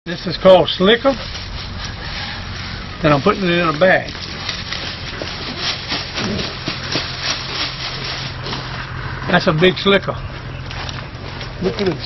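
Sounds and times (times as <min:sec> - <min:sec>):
plastic bag crinkling: 0:01.0 - 0:08.8.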